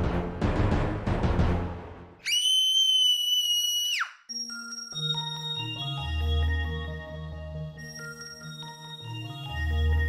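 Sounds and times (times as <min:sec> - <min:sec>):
drum-backed music: 0:00.0 - 0:01.9
high whistle-like tone: 0:02.3 - 0:04.3.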